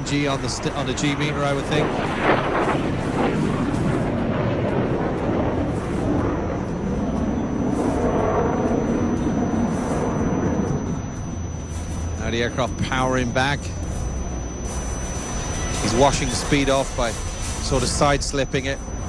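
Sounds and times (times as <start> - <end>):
fighter jet engine roaring: 0.0 - 19.0.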